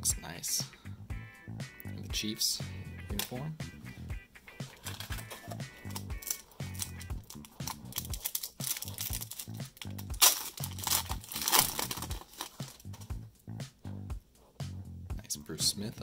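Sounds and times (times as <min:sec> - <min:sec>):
music with steady beat: 0:00.0 - 0:16.0
wrapper tearing and crinkling: 0:04.7 - 0:13.1.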